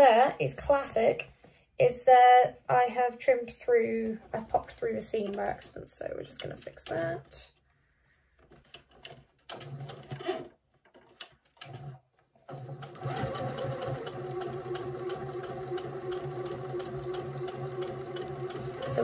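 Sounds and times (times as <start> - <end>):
sewing machine stitching: 8.6 - 19.0.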